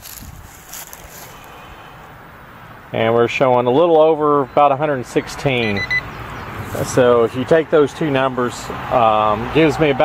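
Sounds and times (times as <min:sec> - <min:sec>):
wind noise on microphone: 0:00.0 - 0:01.2
faint rustles: 0:00.0 - 0:02.0.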